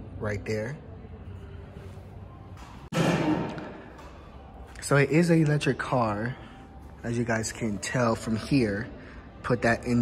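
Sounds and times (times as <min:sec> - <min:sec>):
muffled background sound: 0:00.0 - 0:10.0.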